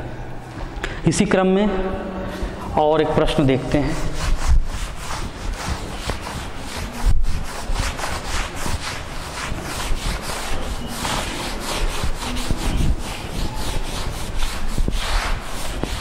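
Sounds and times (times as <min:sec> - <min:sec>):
duster rubbing on chalkboard: 0:02.3 - 0:16.0.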